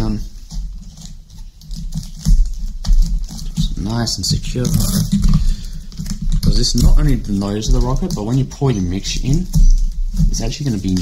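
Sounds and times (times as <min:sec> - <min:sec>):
sticky tape clicks and crinkles: 0:00.0 - 0:11.0.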